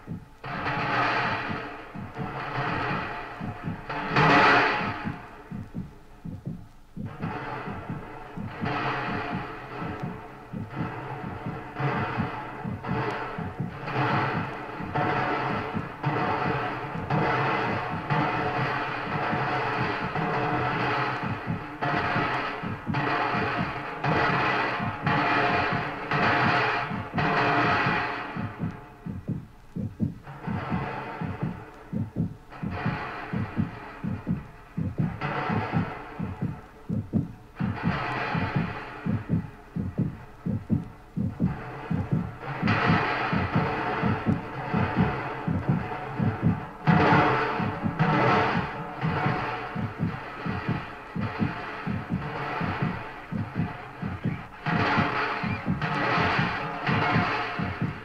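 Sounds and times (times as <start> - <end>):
throbbing low electronic pulses: 0.0 - 58.0.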